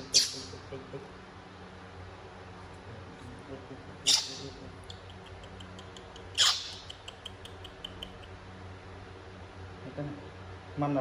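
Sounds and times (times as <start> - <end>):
baby monkey squealing: 0.0 - 0.6, 4.0 - 5.2, 6.2 - 8.3.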